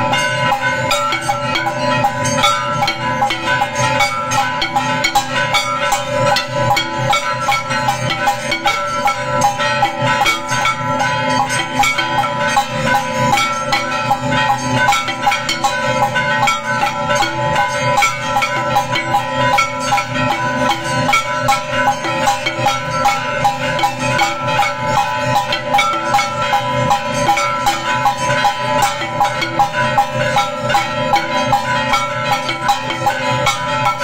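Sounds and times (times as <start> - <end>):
bells ringing: 0.0 - 34.0
cymbals struck rapidly: 0.0 - 34.0
drums struck rapidly: 0.0 - 34.0.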